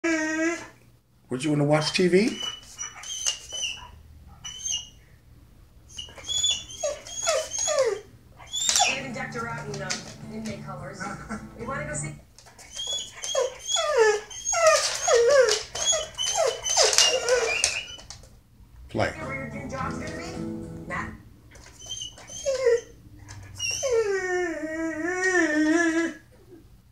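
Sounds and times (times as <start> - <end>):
dog whining and whimpering: 0.0 - 0.8, 2.3 - 5.0, 5.9 - 10.0, 12.6 - 18.2, 21.6 - 26.7.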